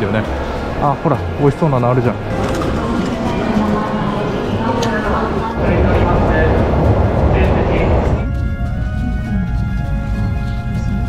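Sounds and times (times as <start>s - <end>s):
voices: 0.0s - 8.4s
train low steady noise: 3.4s - 11.0s.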